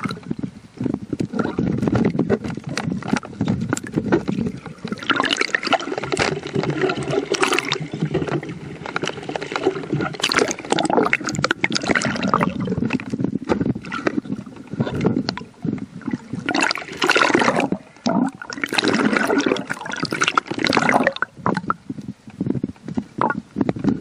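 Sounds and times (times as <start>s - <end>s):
water splashing and bubbling: 0.0s - 21.9s, 23.1s - 24.0s.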